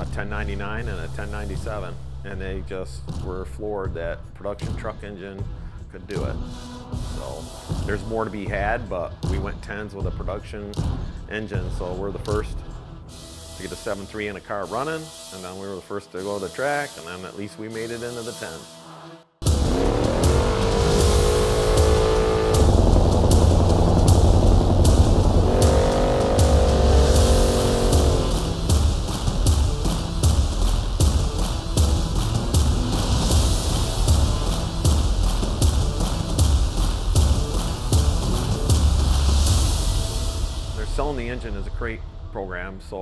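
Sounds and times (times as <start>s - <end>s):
music with a steady beat: 3.0s - 15.6s, 19.4s - 40.8s
car engine revving hard: 19.4s - 30.0s.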